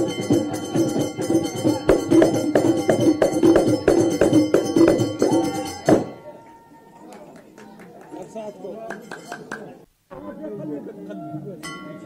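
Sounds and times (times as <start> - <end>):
hand drums fast beat: 0.0 - 6.2.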